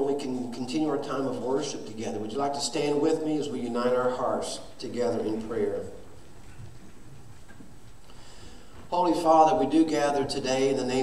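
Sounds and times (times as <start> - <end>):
congregation getting to its feet: 0.0 - 11.0
faint shuffles and knocks: 5.3 - 9.0.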